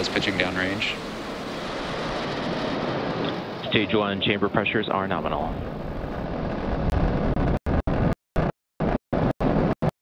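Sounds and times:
rocket engines roaring: 0:00.0 - 0:09.9.

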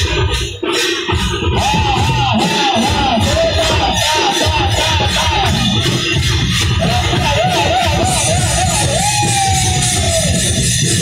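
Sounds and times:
dense continuous drumming: 0:00.0 - 0:11.0.

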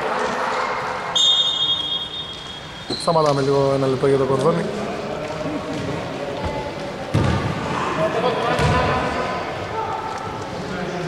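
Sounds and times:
referee's whistle blast: 0:01.1 - 0:03.1.

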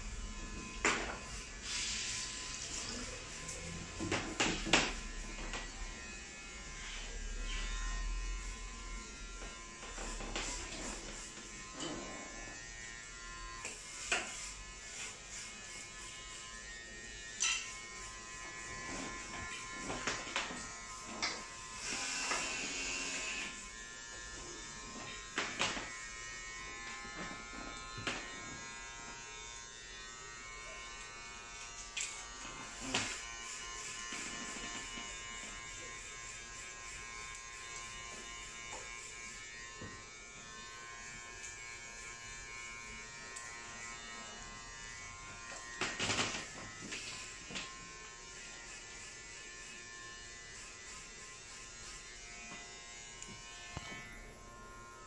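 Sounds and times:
small electric motor buzzing: 0:04.9 - 0:55.0.

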